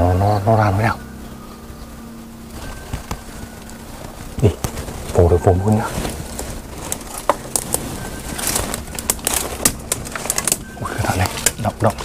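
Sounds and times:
dry leaves and twigs crackling: 0:00.0 - 0:12.0
twigs snapping: 0:02.5 - 0:12.0.

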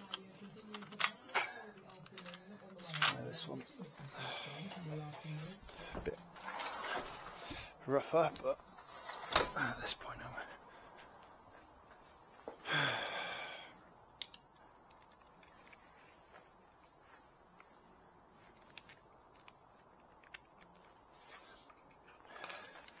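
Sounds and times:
metallic clicks of hand tools: 0:14.2 - 0:15.3.

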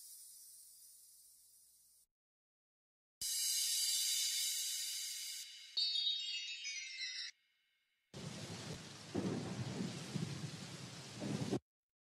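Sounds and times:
low thunder rumbles: 0:08.2 - 0:11.6
steady rain hiss: 0:08.2 - 0:11.6.

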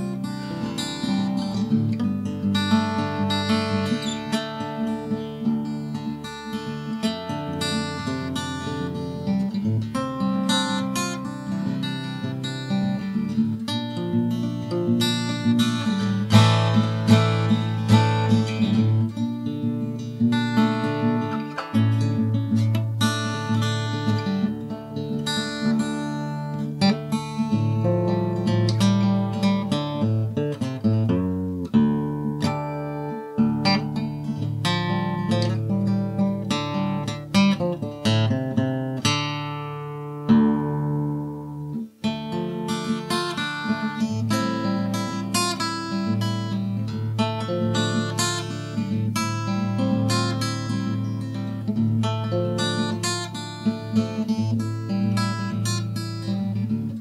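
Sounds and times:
acoustic guitar plucked melody: 0:00.0 - 0:57.0.

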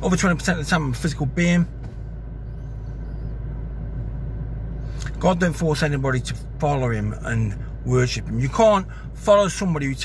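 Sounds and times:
low rumble inside car: 0:00.0 - 0:10.0.

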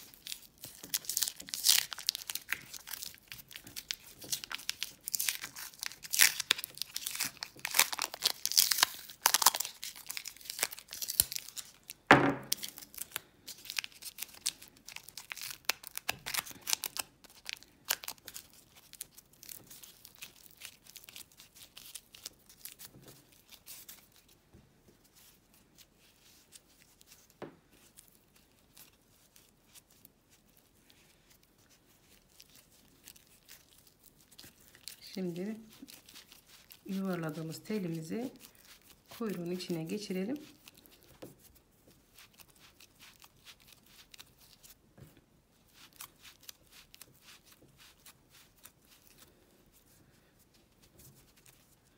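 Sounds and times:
masking tape ripping: 0:00.0 - 0:13.1.

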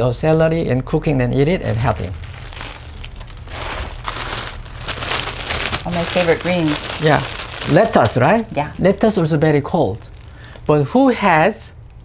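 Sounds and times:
vegetables crinkling and rustling: 0:01.6 - 0:11.2.

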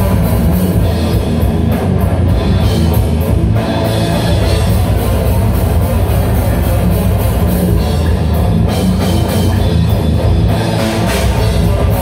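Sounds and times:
bass guitar: 0:00.0 - 0:12.0
distorted electric guitar: 0:00.0 - 0:12.0
drum kit: 0:00.0 - 0:12.0.

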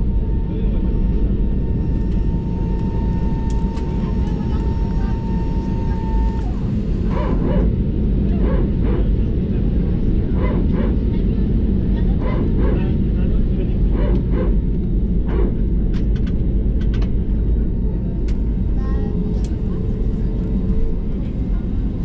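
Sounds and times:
thin steady whine: 0:00.0 - 0:09.1
aircraft cabin rumble: 0:00.0 - 0:22.0.

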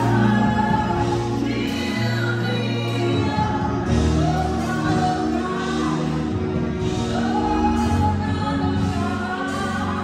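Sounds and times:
gospel choir singing: 0:00.0 - 0:10.0.

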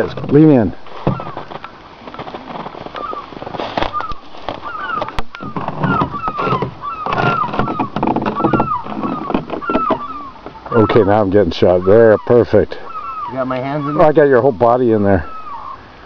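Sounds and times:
birds chirping: 0:00.0 - 0:16.0
lower bird calls: 0:00.0 - 0:16.0.

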